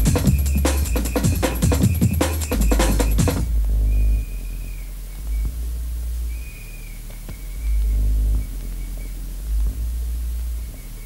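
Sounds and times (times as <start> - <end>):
deep bass notes: 0.0 - 11.0.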